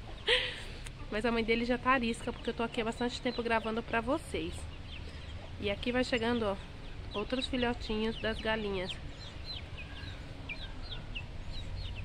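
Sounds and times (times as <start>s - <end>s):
ducklings peeping: 2.0s - 12.0s.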